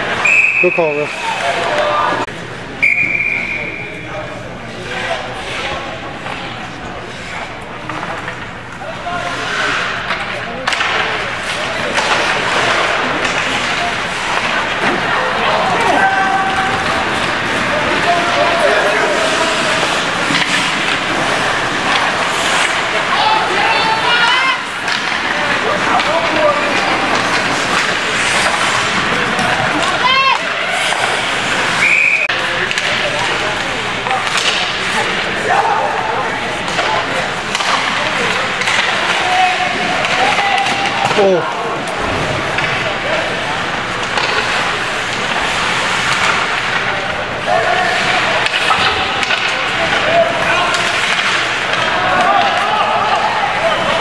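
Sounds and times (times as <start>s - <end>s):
skating on ice: 4.7s - 54.0s
people shouting: 15.1s - 31.9s, 39.0s - 41.4s, 47.5s - 54.0s.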